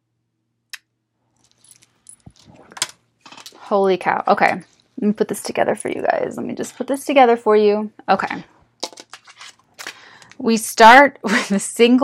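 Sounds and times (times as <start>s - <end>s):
cards being shuffled: 8.8s - 10.0s.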